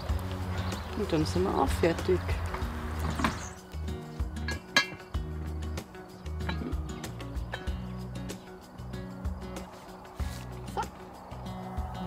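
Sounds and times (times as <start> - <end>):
background music: 0.0 - 12.0
metal spoon clinking against pot: 4.4 - 5.0.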